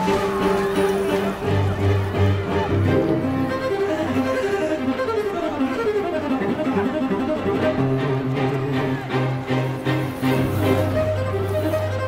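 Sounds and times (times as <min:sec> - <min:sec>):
cello and violin melody: 0:00.0 - 0:12.0.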